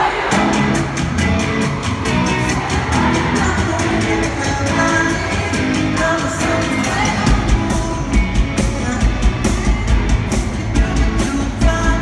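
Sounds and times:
amplified guitars: 0.0s - 12.0s
steady drum beat: 0.0s - 12.0s
man singing lead vocal: 2.1s - 12.0s.

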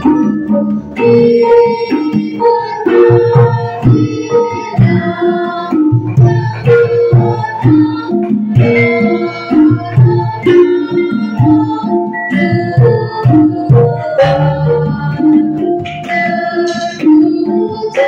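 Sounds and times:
gamelan ensemble playing: 0.0s - 18.0s.

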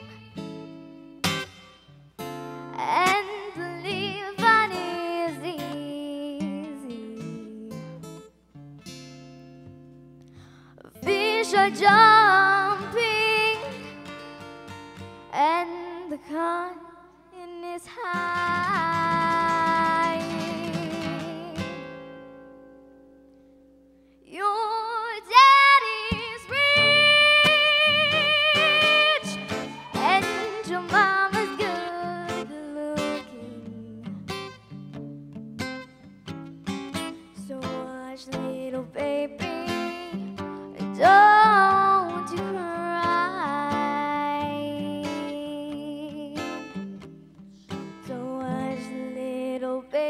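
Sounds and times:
plucked guitar: 0.0s - 50.0s
girl singing into a microphone: 2.7s - 8.1s, 10.6s - 14.2s, 15.2s - 21.9s, 24.2s - 34.4s, 37.3s - 46.8s, 48.0s - 50.0s.

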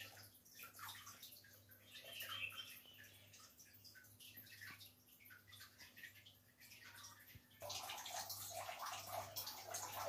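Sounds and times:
water bubbling in a pot: 0.0s - 10.0s.

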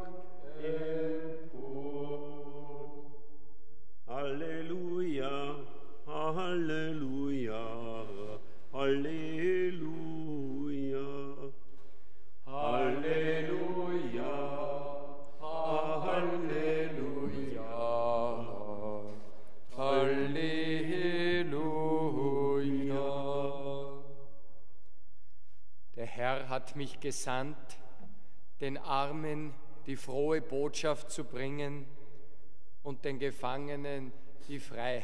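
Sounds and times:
sung liturgical chant: 0.0s - 24.6s, 26.0s - 32.1s, 32.8s - 35.0s.

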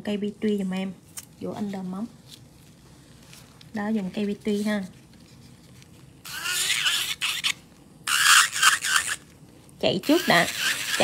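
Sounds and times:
electric nail drill grinding: 6.2s - 9.3s, 10.0s - 11.0s.

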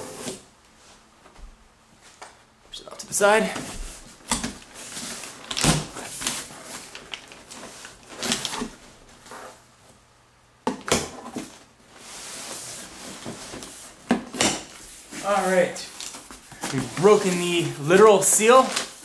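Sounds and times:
packing paper rustling: 3.8s - 9.6s, 14.8s - 19.0s.

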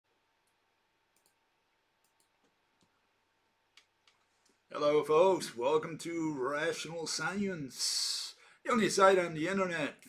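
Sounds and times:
faint irregular clicks: 0.4s - 1.4s, 2.0s - 3.0s, 3.7s - 4.6s.

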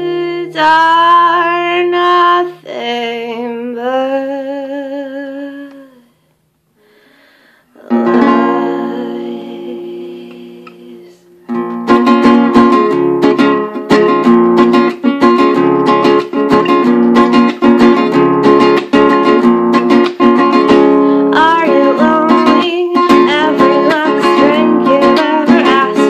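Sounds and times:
woman singing: 0.0s - 6.1s, 7.7s - 11.4s, 21.1s - 26.0s
acoustic guitar strumming: 7.8s - 26.0s.

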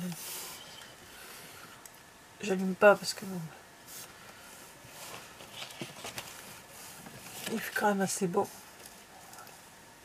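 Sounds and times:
soft plastic clicks and rustles: 8.7s - 9.6s.

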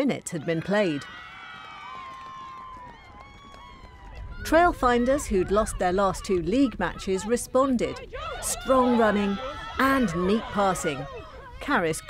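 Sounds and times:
crowd cheering and shouting: 0.3s - 12.0s.

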